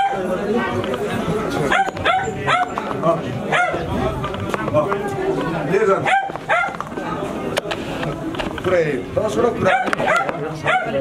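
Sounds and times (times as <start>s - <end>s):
dog barking: 0.0s - 0.3s, 1.7s - 2.8s, 3.5s - 3.9s, 6.0s - 6.8s, 9.6s - 11.0s
people talking: 0.0s - 11.0s.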